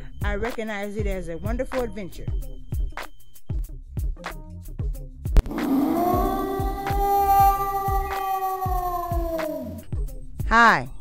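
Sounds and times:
low thudding beat: 5.4 - 9.4
long howl: 5.4 - 9.8.

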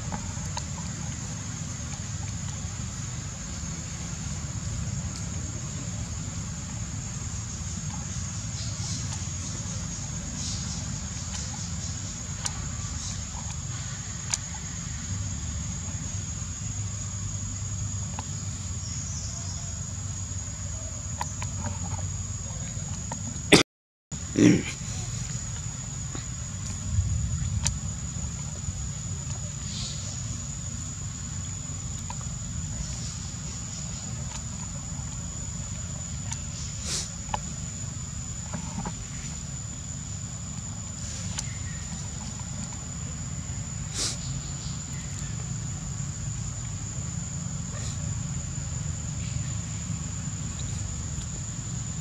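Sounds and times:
low outdoor rumble: 0.0 - 23.6, 24.2 - 52.0.

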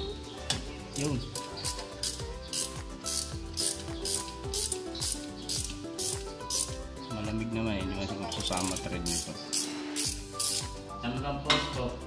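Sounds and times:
ratchet wrench clicking: 1.0 - 6.8, 8.4 - 10.7.

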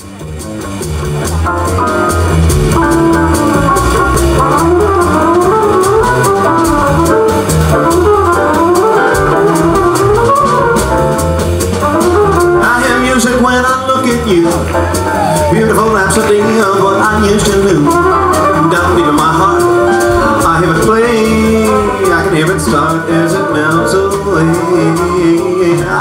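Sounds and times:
drum kit with busy cymbals: 0.0 - 26.0
upright bass: 0.0 - 26.0
keyboard melody: 0.2 - 26.0
trumpet melody: 1.5 - 26.0.

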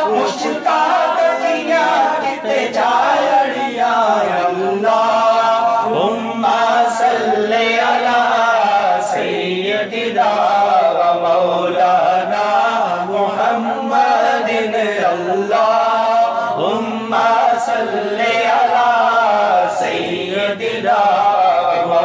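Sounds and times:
man singing unaccompanied: 0.0 - 22.0.

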